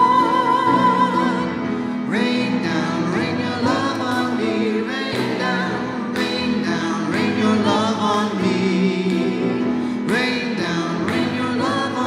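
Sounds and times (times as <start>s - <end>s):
choir singing a hymn: 0.0s - 12.0s
instrumental accompaniment: 0.0s - 12.0s.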